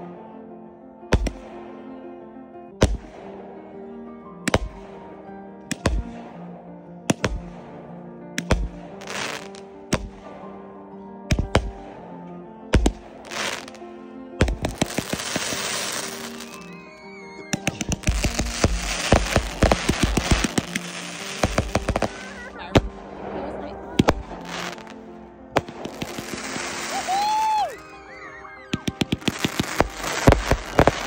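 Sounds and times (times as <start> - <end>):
background music: 0.0 - 31.0
fireworks crackling: 2.8 - 5.1, 7.1 - 7.8, 8.4 - 10.5, 11.3 - 11.9, 12.7 - 31.0
fireworks bangs: 2.8 - 10.6, 11.3 - 12.0, 12.7 - 13.8, 14.4 - 31.0.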